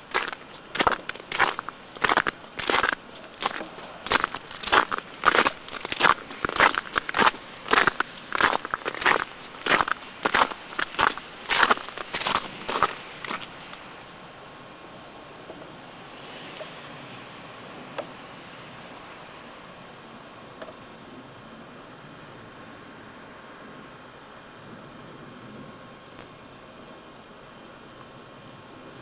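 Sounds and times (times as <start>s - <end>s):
footsteps crunching through snow: 0.0s - 13.9s
faint steady hiss: 0.0s - 29.0s.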